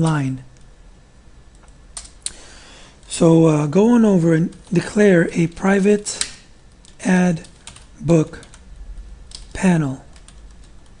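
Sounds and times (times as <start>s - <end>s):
computer keyboard keystrokes: 1.6s - 2.3s, 5.5s - 8.6s, 9.3s - 11.0s.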